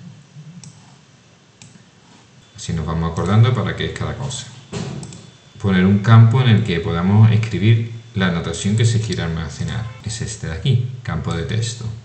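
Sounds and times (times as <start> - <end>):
computer mouse clicks: 0.6 - 1.0, 1.6 - 1.8, 5.0 - 5.3.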